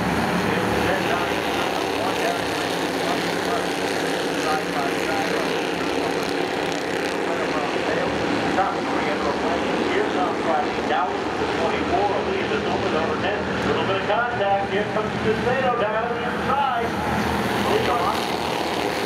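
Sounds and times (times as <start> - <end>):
race car engines droning: 0.0 - 19.0
faint voices: 0.3 - 19.0.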